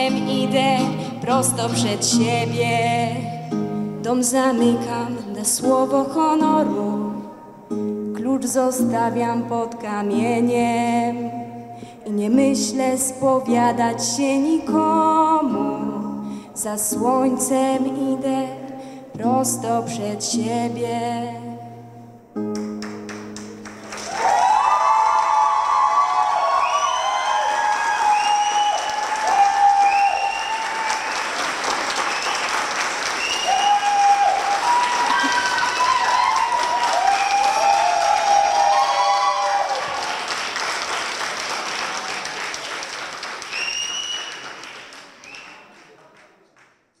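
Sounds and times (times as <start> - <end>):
audience applauding: 22.6 - 47.0
cheering whoops: 23.9 - 40.5, 43.4 - 44.5.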